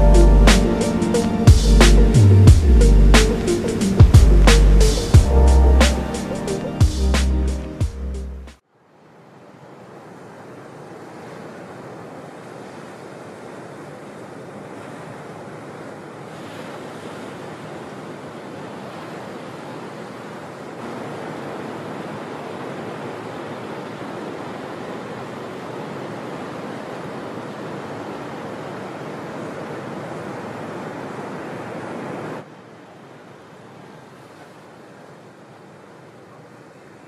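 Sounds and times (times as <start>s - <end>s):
ocean waves breaking: 0.0s - 37.0s.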